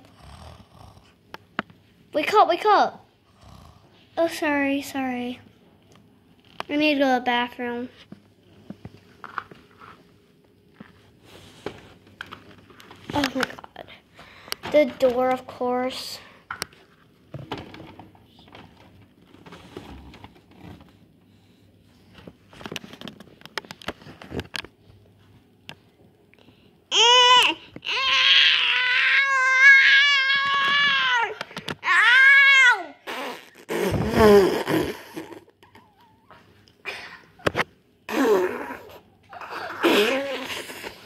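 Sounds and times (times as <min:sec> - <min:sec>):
rustling and handling noises: 0:05.4 - 0:15.6, 0:16.5 - 0:26.6.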